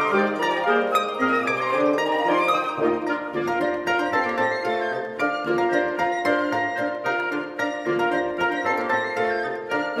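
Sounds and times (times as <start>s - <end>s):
wind ensemble with harp: 0.0s - 10.0s.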